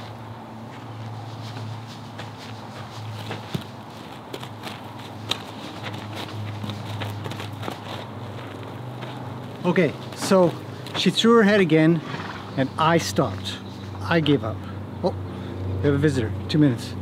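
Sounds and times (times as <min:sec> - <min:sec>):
footsteps on gravel: 0:00.0 - 0:11.8.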